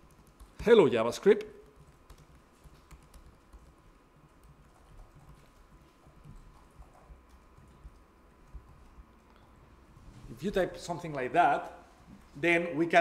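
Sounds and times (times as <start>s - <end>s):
typing on computer keyboard: 0.0s - 0.6s, 1.6s - 8.9s.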